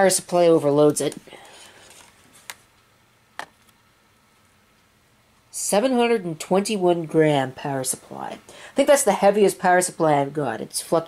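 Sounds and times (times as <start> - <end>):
faint handling noise: 0.9 - 3.8.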